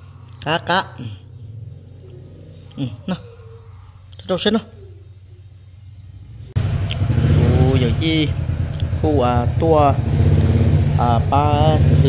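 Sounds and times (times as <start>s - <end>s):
motorcycle engine idling: 4.8s - 12.0s.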